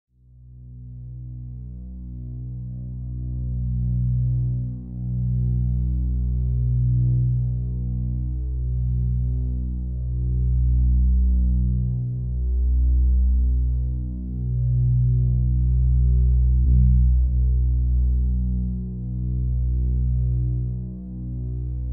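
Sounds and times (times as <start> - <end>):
deep throbbing drone: 0.6 - 21.9.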